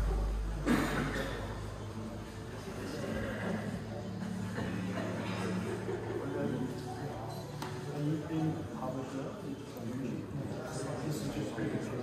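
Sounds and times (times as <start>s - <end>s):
indistinct voices in large room: 0.0s - 12.0s.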